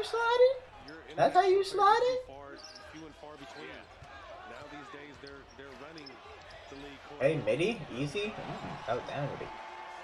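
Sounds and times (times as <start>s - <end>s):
sports commentator talking: 0.0s - 9.6s.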